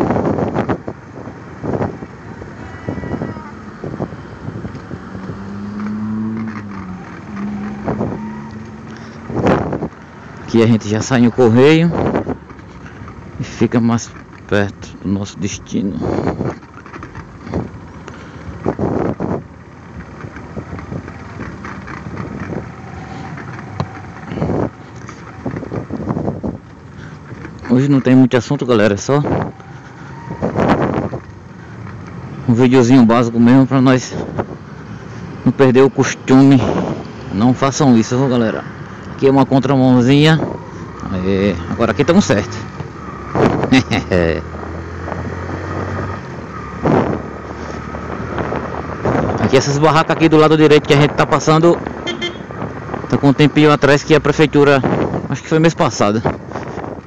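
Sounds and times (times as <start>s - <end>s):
motorcycle engine running: 11.9s - 28.2s, 51.8s - 53.0s.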